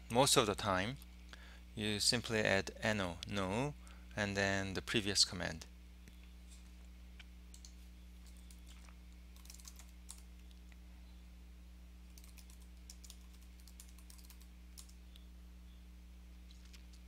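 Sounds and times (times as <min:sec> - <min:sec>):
steady low hum: 0:00.0 - 0:17.0
typing on computer keyboard: 0:09.4 - 0:10.2, 0:12.1 - 0:15.0.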